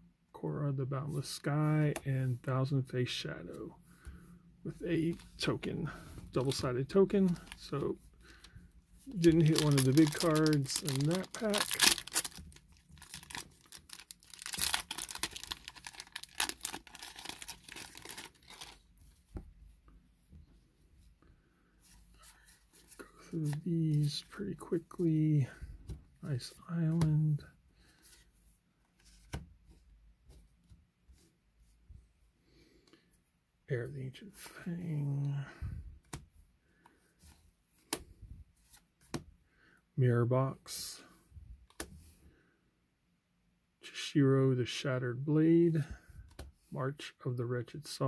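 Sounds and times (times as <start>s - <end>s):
foil wrapper tearing and crinkling: 9.1s - 18.8s
cards sliding softly: 20.3s - 31.8s.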